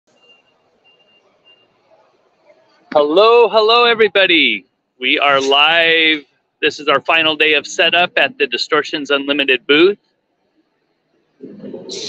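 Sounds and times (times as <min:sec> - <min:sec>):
low hall noise: 0:00.2 - 0:12.0.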